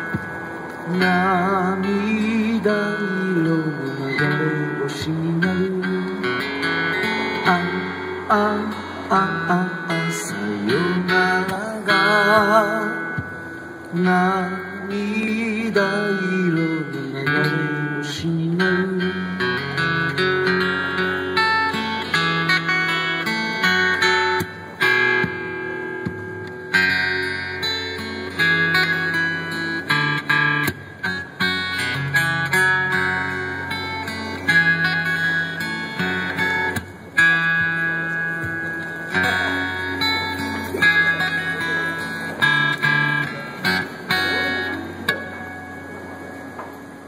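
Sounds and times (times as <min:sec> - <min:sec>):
acoustic guitar strumming: 0:00.0 - 0:47.0.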